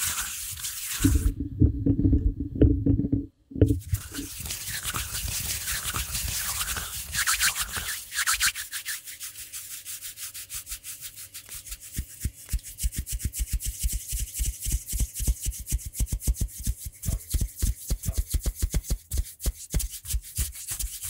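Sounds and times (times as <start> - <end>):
hands rubbing together: 0.0 - 1.4, 3.8 - 21.0.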